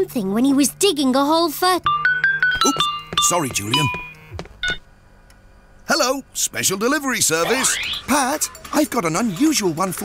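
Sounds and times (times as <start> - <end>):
mobile phone ringtone: 1.9 - 4.8.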